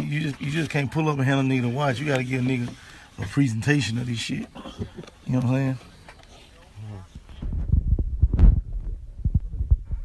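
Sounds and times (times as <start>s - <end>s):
phone microphone knocks and rubbing: 7.2s - 10.0s.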